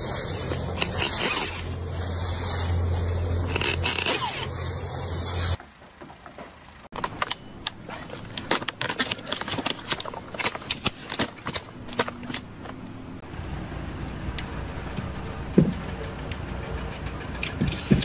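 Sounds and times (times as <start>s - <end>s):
sharp clicks and cracks: 6.9s - 12.9s.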